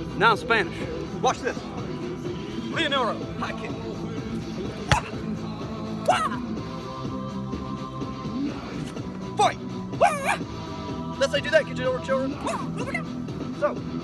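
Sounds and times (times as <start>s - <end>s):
background music: 0.0s - 14.0s.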